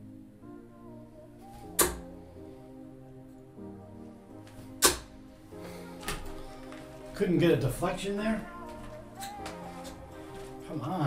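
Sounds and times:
background music: 0:00.0 - 0:11.0
darts hitting dartboard: 0:01.8 - 0:02.1, 0:04.8 - 0:05.1.

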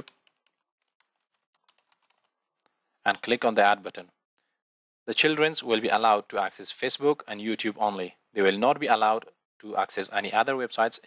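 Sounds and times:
keyboard typing: 0:00.0 - 0:02.7.

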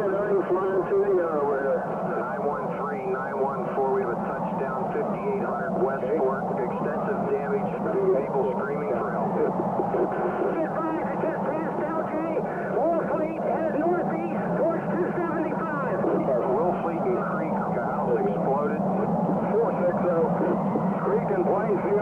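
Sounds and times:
police radio chatter: 0:00.0 - 0:22.0.

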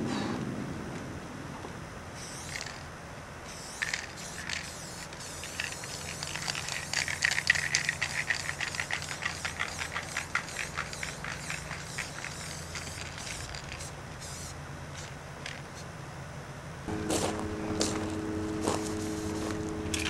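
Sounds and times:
spray can hissing: 0:03.6 - 0:15.1
spray can ball clacking: 0:03.8 - 0:13.9.

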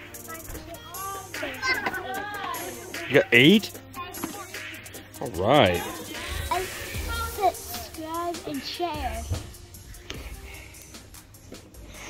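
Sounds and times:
young child's voice: 0:00.0 - 0:02.6, 0:06.5 - 0:09.4
background music: 0:00.0 - 0:12.0.

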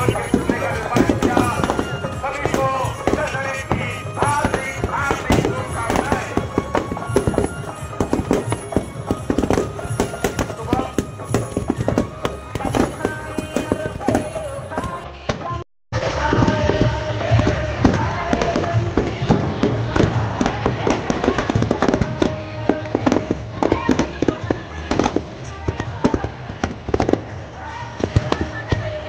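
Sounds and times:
voices: 0:00.0 - 0:15.3, 0:16.0 - 0:29.0
firecrackers cracking and popping: 0:00.0 - 0:15.4, 0:16.0 - 0:29.0
loud music: 0:00.0 - 0:24.2.

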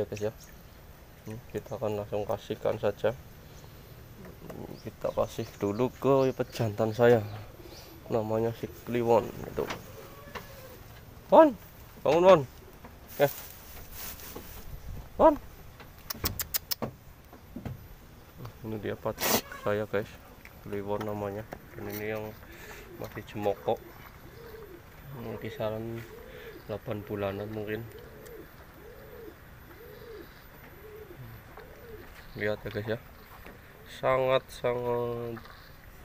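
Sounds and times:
dove cooing: 0:04.0 - 0:05.7, 0:06.5 - 0:11.2, 0:22.0 - 0:32.5, 0:33.2 - 0:34.2
dry hay rustling: 0:11.6 - 0:15.2.

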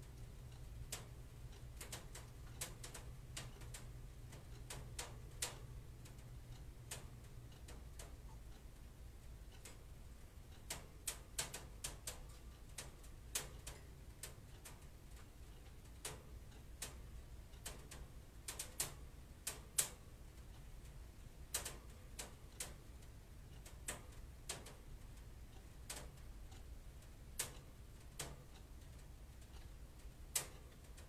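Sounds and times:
low steady hum: 0:00.0 - 0:31.0
irregular sharp clicks: 0:00.2 - 0:08.2, 0:10.5 - 0:20.0, 0:20.6 - 0:24.8, 0:25.9 - 0:26.6, 0:27.4 - 0:29.7, 0:30.3 - 0:31.0.

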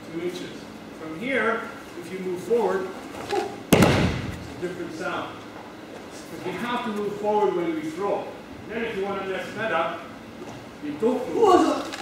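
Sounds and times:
man talking: 0:00.0 - 0:03.0, 0:04.5 - 0:05.4, 0:06.1 - 0:10.1, 0:10.8 - 0:12.0
body hitting padded mat: 0:03.7 - 0:04.6.

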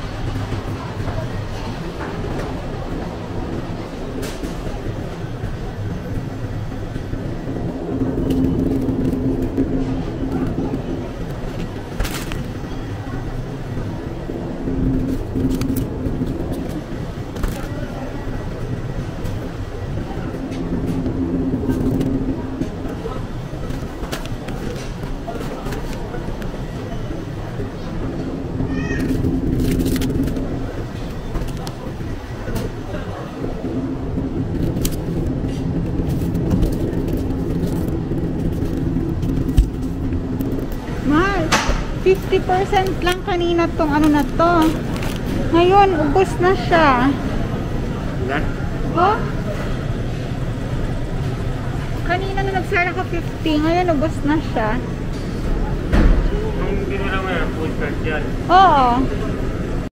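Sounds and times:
indistinct voices: 0:00.0 - 0:59.9
shopping cart rolling on tiles: 0:29.0 - 0:47.1.

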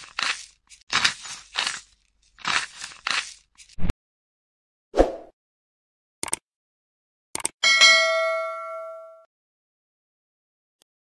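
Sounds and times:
notification bell ding: 0:07.6 - 0:09.3.

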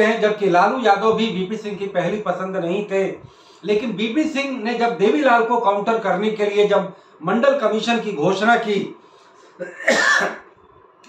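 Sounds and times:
man speaking: 0:00.0 - 0:09.0
man coughing: 0:09.6 - 0:10.5.

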